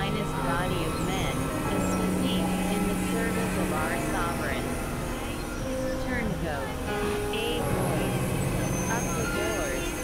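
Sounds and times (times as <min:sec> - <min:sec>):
dense noisy bed: 0:00.0 - 0:10.0
synthesizer drones: 0:00.0 - 0:10.0.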